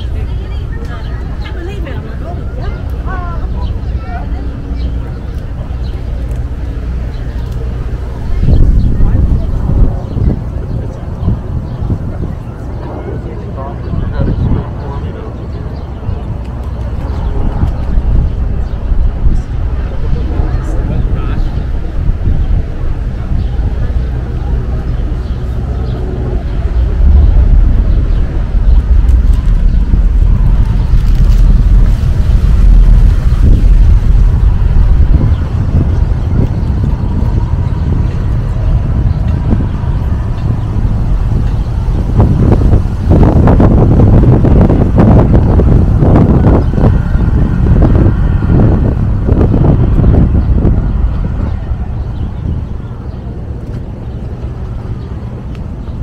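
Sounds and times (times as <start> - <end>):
people talking: 0.0 - 31.6
wind rumbling on microphone: 0.0 - 56.0.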